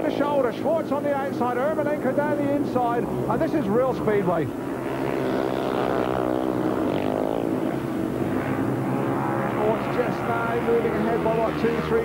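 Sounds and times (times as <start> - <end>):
motorcycle engines racing: 0.0 - 12.0.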